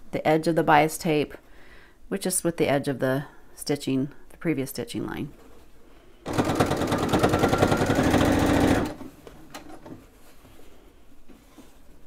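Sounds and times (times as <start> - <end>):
sewing machine stitching: 6.3 - 9.1.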